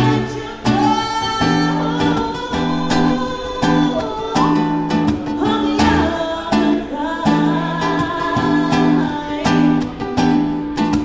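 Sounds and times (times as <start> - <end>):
acoustic guitar strumming: 0.0 - 11.0
person singing: 0.0 - 11.0.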